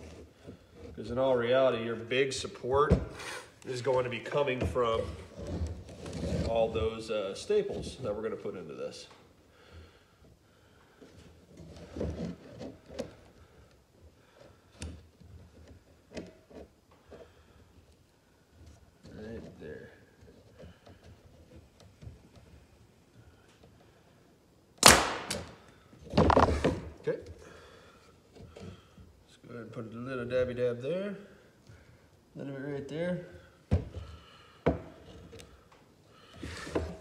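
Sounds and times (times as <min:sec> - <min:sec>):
nail gun shots: 0:24.8 - 0:25.6
tool and wood clicks: 0:24.8 - 0:25.6.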